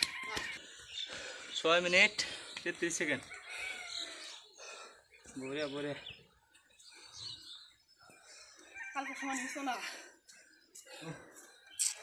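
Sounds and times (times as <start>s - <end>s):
distant rooster crowing: 0.0s - 0.6s, 8.7s - 9.8s.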